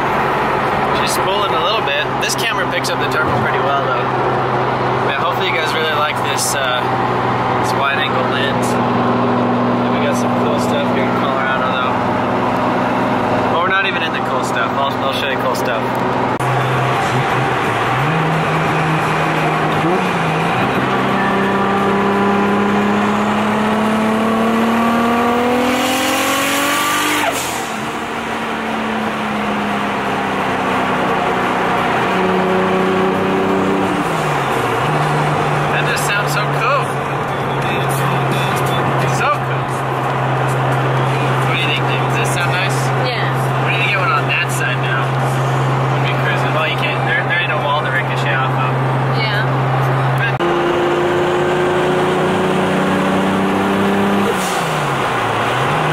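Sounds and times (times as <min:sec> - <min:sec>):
car engine accelerating: 0:00.0 - 0:55.9.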